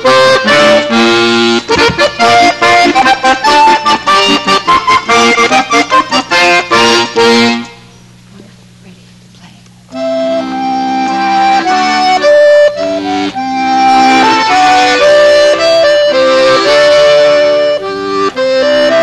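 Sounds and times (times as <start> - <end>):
accordions playing a duet: 0.0 - 8.0, 9.9 - 19.0
low steady hum: 0.0 - 11.4.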